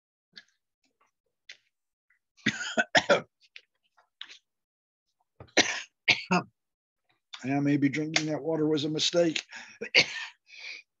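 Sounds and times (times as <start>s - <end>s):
man coughing and clearing throat: 2.4s - 3.4s, 5.4s - 6.6s, 9.8s - 10.5s.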